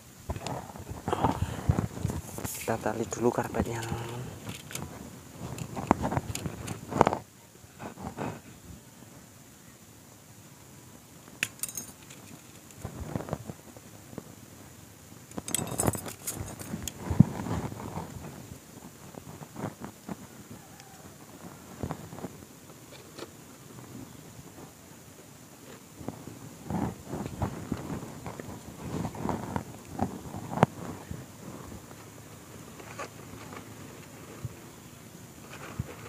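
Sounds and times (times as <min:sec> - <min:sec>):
plastic sheet rustling and crinkling: 0:00.3 - 0:08.5, 0:15.4 - 0:20.3, 0:25.5 - 0:34.7, 0:35.3 - 0:36.0.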